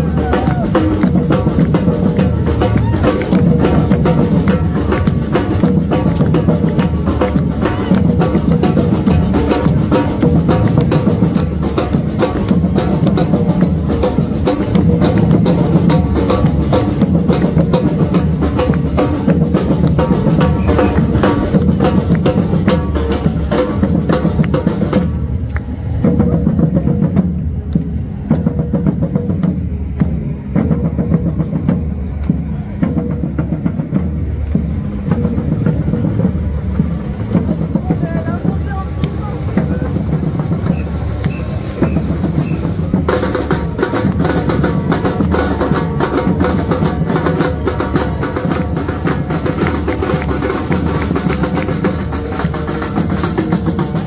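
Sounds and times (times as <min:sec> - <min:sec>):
bass drums and snare drums: 0:00.0 - 0:54.0.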